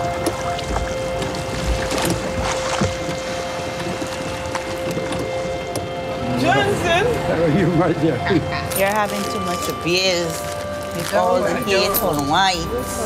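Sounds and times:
oars splashing in water: 0.0 - 7.3
held music drone: 0.0 - 13.0.

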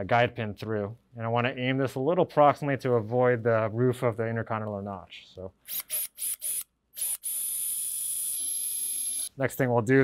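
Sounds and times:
surgical drill whining: 5.7 - 9.4.

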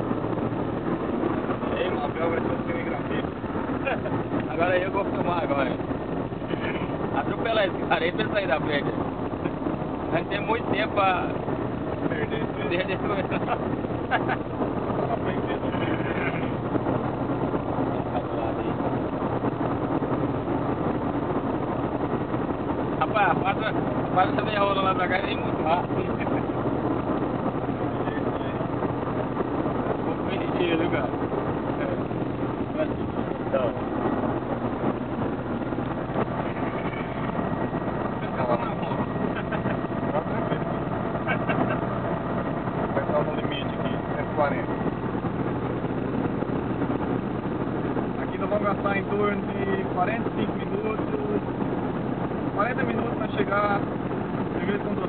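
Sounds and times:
car engine hum: 0.0 - 55.0
road noise inside car: 0.0 - 55.0
people talking: 1.6 - 16.6, 17.9 - 18.8, 23.0 - 26.6, 27.6 - 28.8, 30.0 - 33.8, 38.1 - 42.1, 42.8 - 44.8, 48.2 - 51.6, 52.6 - 55.0.

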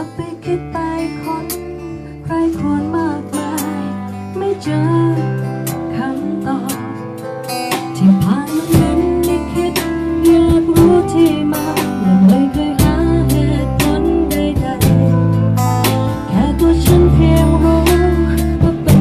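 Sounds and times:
person singing: 0.0 - 7.1, 8.0 - 19.0
held bass notes: 8.7 - 19.0.

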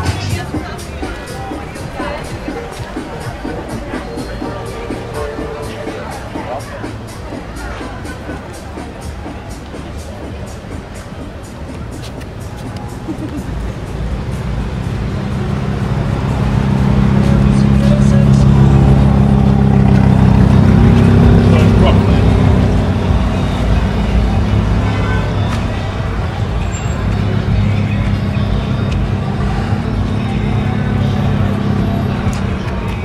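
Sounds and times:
car engine humming: 0.0 - 33.0
music playing: 0.0 - 33.0
passers-by talking: 0.0 - 33.0.

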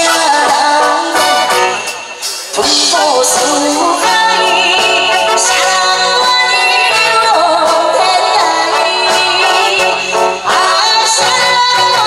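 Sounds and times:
woman singing with vibrato: 0.0 - 1.9, 2.6 - 12.0
loud backing music: 0.0 - 12.0.

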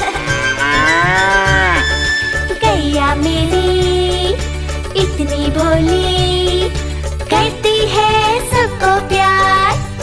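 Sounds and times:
cartoon cow mooing: 0.0 - 2.1
children's song backing music: 0.0 - 10.0.

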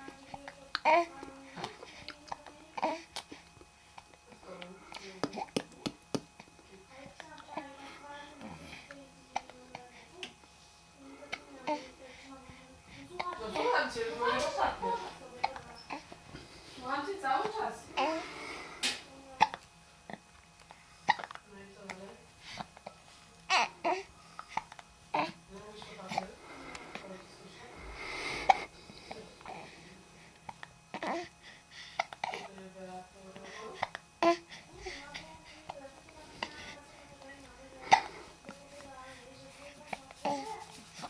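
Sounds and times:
soft baby vocal sound: 0.1 - 3.5, 37.8 - 41.0
baby hiccupping: 21.1 - 21.4, 23.5 - 25.4.

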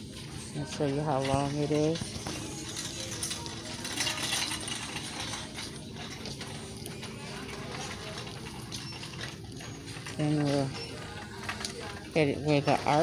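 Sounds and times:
faint distant voices: 0.0 - 13.0
shop murmur: 0.0 - 13.0.

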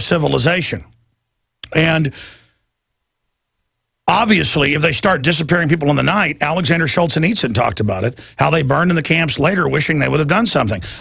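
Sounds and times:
breathy exhale: 2.1 - 2.6.

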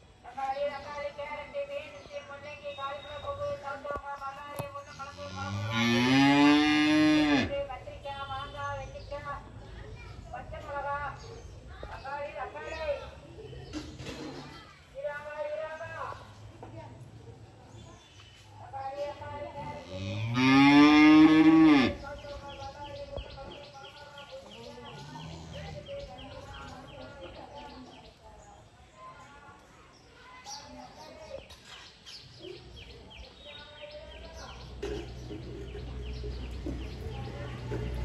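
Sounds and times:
deep mooing call: 5.1 - 7.5.

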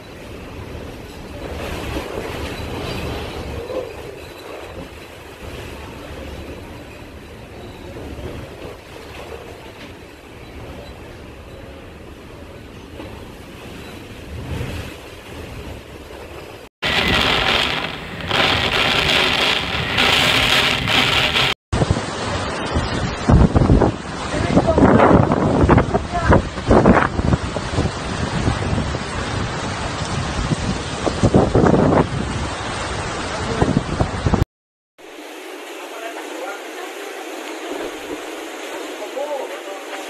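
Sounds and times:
rain: 0.0 - 34.4, 35.0 - 40.0
wind gusts on microphone: 16.8 - 34.4.

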